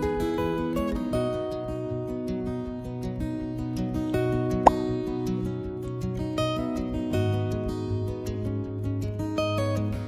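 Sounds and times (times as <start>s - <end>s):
soft acoustic guitar music: 0.0s - 10.0s.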